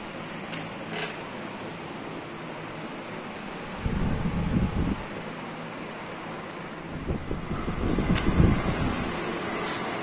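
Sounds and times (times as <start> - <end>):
wind rumbling on microphone: 3.7 - 5.2, 6.9 - 9.2.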